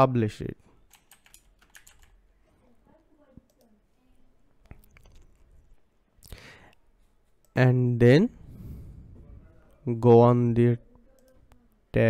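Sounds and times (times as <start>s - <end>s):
faint keyboard typing: 0.7s - 2.3s, 2.9s - 3.8s, 10.9s - 11.8s.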